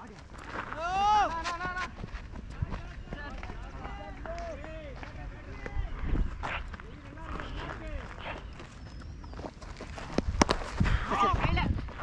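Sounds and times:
players shouting calls: 0:00.0 - 0:08.5
footsteps: 0:00.0 - 0:12.0
wind rumble on microphone: 0:00.3 - 0:12.0.

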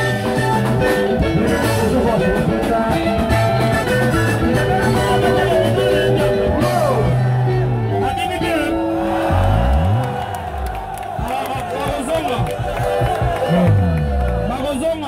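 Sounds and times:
live band music: 0:00.0 - 0:15.0
crowd shouting and whooping: 0:02.9 - 0:14.7.

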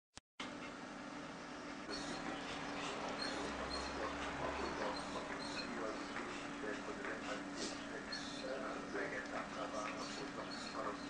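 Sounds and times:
dog panting: 0:01.8 - 0:11.0
dog whimpering: 0:01.9 - 0:06.0.

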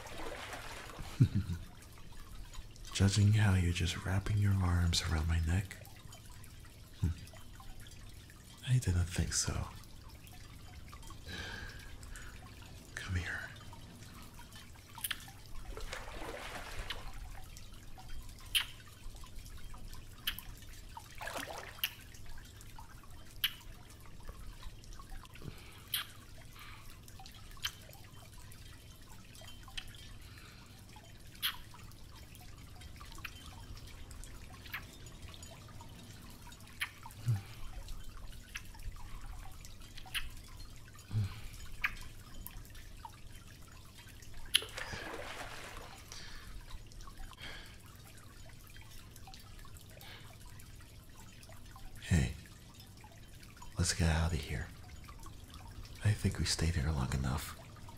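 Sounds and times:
water dripping: 0:00.0 - 0:57.9
wet kissing smacks: 0:15.0 - 0:15.3, 0:44.5 - 0:44.7.

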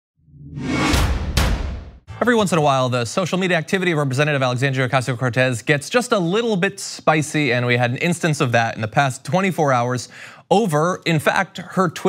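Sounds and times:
whoosh: 0:00.3 - 0:02.1
sharp hits: 0:00.4 - 0:02.2.

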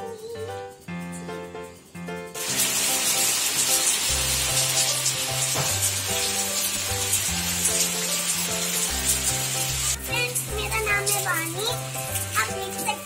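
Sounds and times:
rain falling on pavement: 0:02.4 - 0:13.0.

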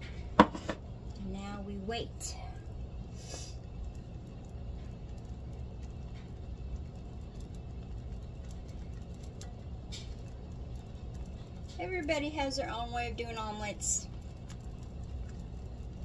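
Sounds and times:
eggs sizzling in a skillet: 0:00.0 - 0:16.0.

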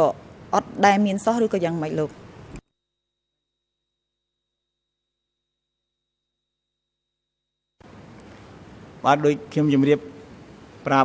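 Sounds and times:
man speaking: 0:09.0 - 0:10.2.

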